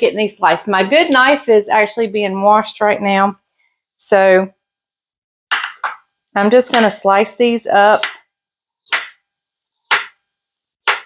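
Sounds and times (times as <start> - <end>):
knife chopping on wooden board: 8.0 - 8.2, 8.9 - 9.2, 9.9 - 10.2.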